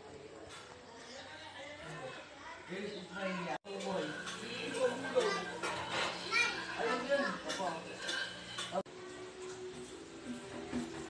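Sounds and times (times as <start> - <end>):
children talking and calling out: 5.1 - 7.6.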